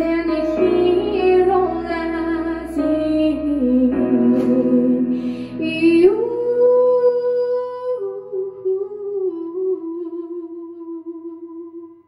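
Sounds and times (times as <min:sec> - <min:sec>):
girl singing into a microphone: 0:00.0 - 0:12.0.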